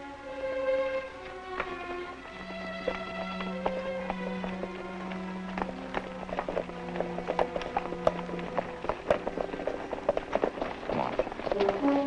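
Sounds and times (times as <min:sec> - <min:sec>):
horses' hooves clip-clopping: 0:00.0 - 0:12.0
string and brass score: 0:00.0 - 0:12.0.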